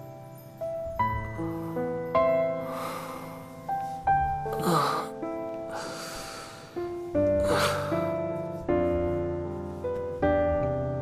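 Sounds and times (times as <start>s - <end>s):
soft sustained keyboard chords: 0.0s - 11.0s.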